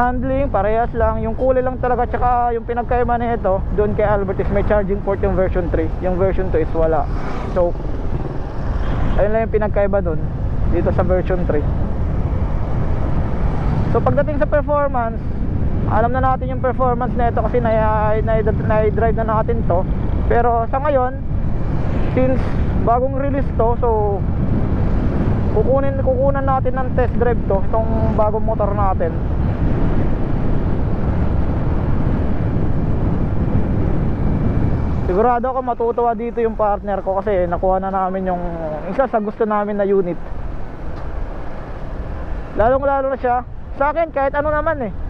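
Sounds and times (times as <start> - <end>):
wind and road noise rumble: 0.0 - 45.0.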